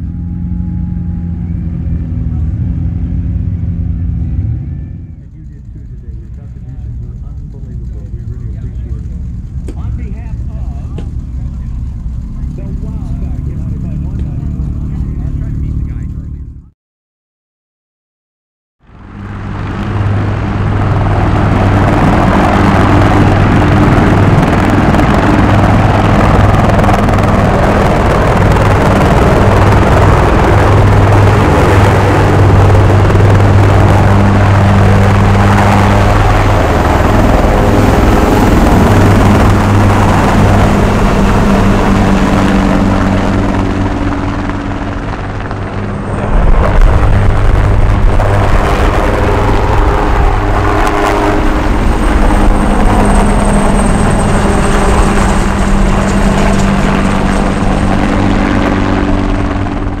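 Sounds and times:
helicopters flying past: 0:00.0 - 0:16.7, 0:18.8 - 1:00.0
high turbine whine: 0:00.0 - 0:16.7, 0:18.8 - 1:00.0.

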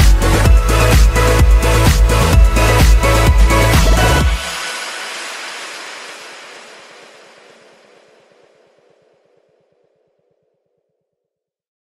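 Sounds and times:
hiss-like noise sweep: 0:00.0 - 0:10.4.

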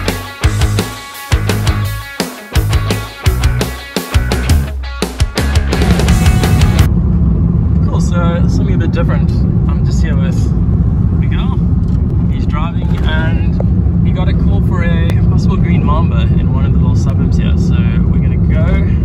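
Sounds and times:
rock music: 0:00.0 - 0:06.9
car road and engine rumble: 0:05.7 - 0:19.0.

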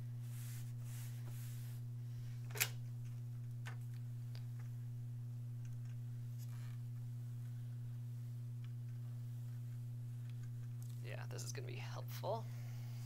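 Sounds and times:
steady low hum: 0:00.0 - 0:13.0
fabric being smoothed by hand: 0:00.2 - 0:01.9.

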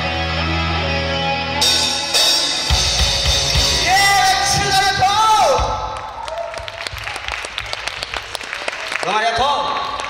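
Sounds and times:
audience applauding: 0:05.8 - 0:10.0.

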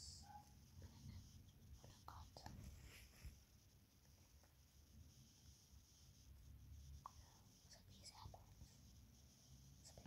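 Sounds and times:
faint handling rustles: 0:02.4 - 0:03.4.

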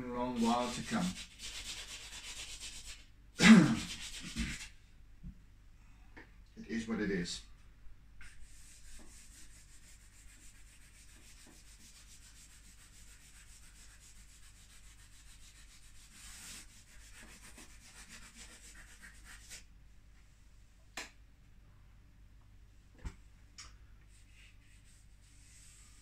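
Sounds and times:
charcoal scratching on paper: 0:00.2 - 0:04.7, 0:08.2 - 0:19.7, 0:24.1 - 0:26.0.

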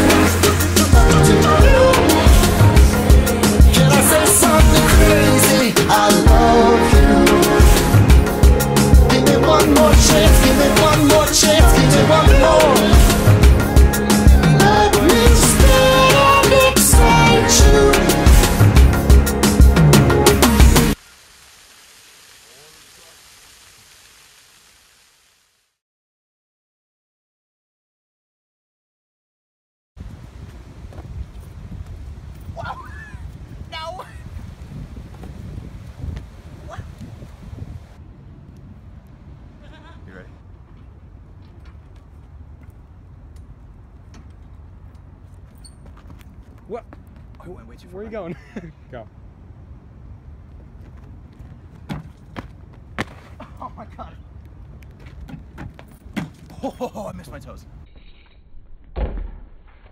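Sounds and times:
fountain water splashing: 0:20.9 - 0:25.7.

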